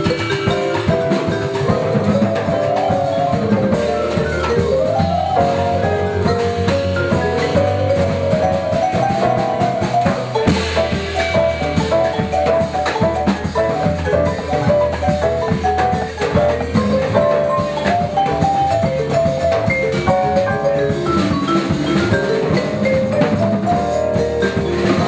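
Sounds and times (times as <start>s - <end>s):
bass line: 0.0s - 25.0s
drum kit: 0.0s - 25.0s
mallet keyboard runs: 0.0s - 25.0s.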